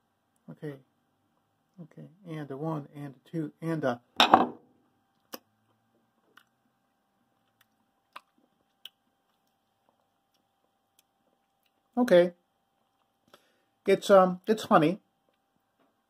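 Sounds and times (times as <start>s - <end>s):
mouth clicks and smacks: 7.4s - 12.0s.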